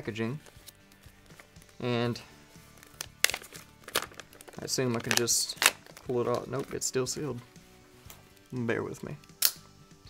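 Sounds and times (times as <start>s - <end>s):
packaging crinkling: 2.7s - 6.8s.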